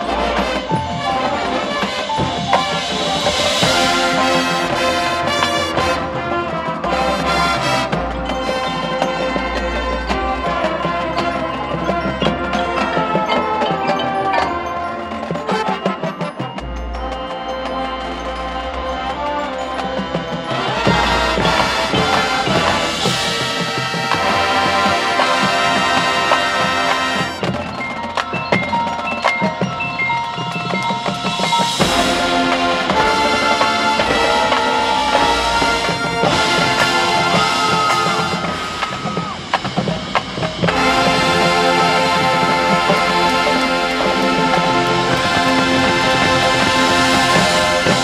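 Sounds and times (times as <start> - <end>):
marching band playing: 0.0 - 48.0.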